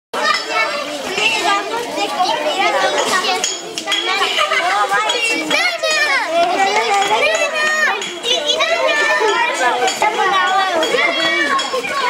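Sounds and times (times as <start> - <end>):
young children chattering: 0.2 - 12.0.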